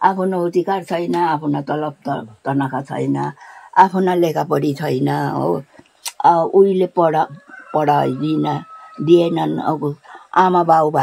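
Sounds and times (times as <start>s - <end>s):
elderly woman speaking: 0.0s - 11.0s.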